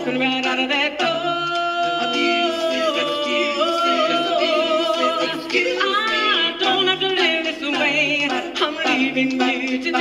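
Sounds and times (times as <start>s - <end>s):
female a cappella ensemble singing: 0.0s - 10.0s.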